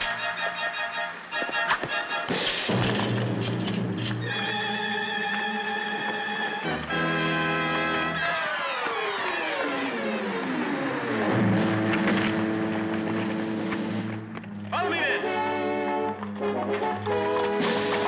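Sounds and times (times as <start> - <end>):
orchestral film score: 0.0 - 8.5, 11.1 - 18.0.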